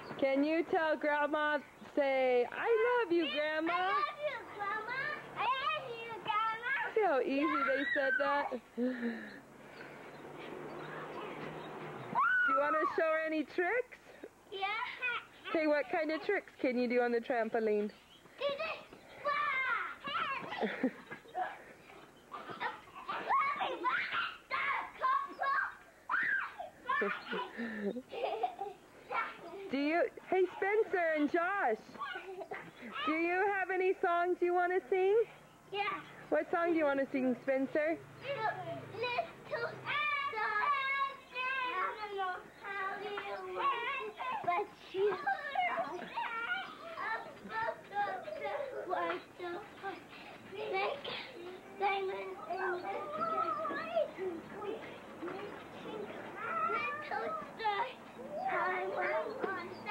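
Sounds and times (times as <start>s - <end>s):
children yelping and squealing: 2.5s - 13.2s, 14.1s - 16.0s, 18.2s - 33.5s, 35.3s - 36.3s, 38.0s - 59.9s.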